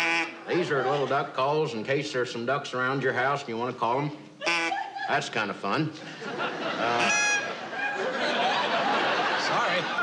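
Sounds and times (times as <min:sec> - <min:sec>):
duck call quack: 0:00.0 - 0:00.7, 0:04.4 - 0:05.0, 0:06.8 - 0:07.6.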